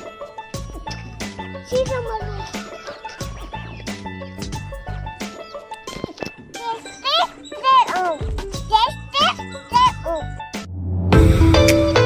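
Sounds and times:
children's music with chimes: 0.0 - 10.7
girl calling excitedly: 8.7 - 10.3
loud tune: 10.6 - 12.0.

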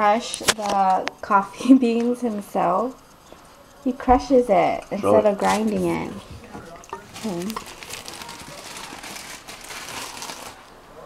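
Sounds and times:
plastic bag crinkling: 5.4 - 11.0
coffee beans cracking: 6.9 - 10.7.

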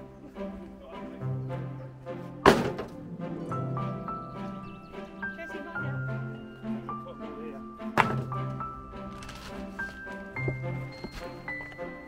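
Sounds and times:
background music: 0.0 - 12.0
stone thunking into wheelbarrow: 2.4 - 3.0, 8.0 - 8.4.

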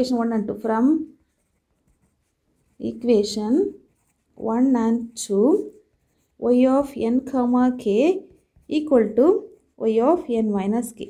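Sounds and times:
person speaking: 0.0 - 11.0
pen writing on paper: 1.0 - 10.4.

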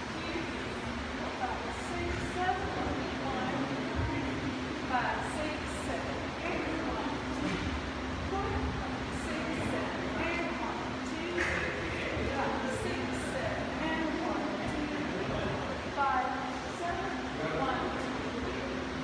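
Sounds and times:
low hum and rumble: 0.0 - 19.0.

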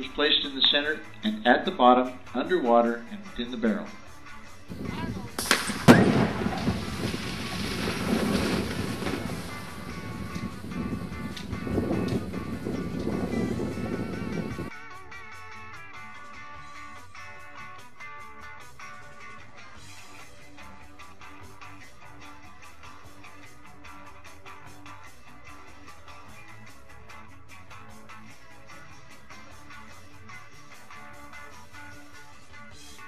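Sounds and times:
underwater explosion blast: 4.7 - 14.6
water falling back: 4.7 - 14.7.

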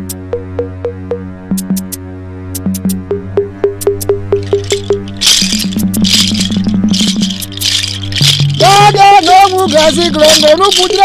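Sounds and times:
music with low drone: 0.0 - 11.0
rattle shaken rhythmically: 3.6 - 11.0
man singing wavering notes: 8.2 - 11.0.

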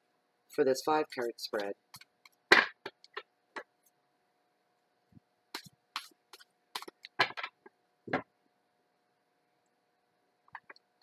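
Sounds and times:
cards being shuffled: 5.6 - 7.5.

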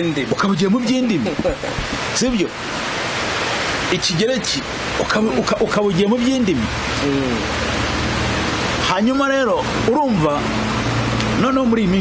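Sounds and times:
man speaking: 0.0 - 1.4, 3.9 - 7.5, 11.4 - 12.0
loud steady hiss: 0.0 - 12.0.

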